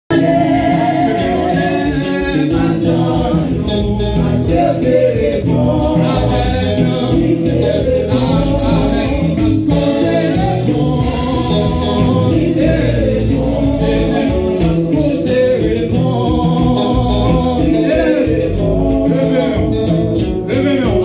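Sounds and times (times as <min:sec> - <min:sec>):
man singing through loudspeakers: 0:00.1 - 0:21.0
steady beat: 0:00.1 - 0:21.0
voices singing along: 0:00.1 - 0:21.0.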